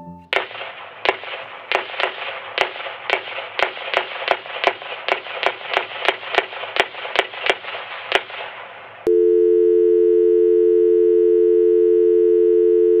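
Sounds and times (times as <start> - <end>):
sharp clicks: 0.3 - 8.6
crackly hiss: 0.4 - 9.1
telephone dial tone: 9.1 - 13.0.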